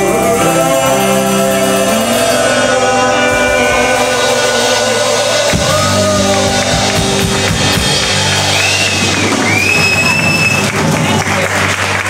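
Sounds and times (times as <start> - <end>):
worship band playing: 0.0 - 12.0.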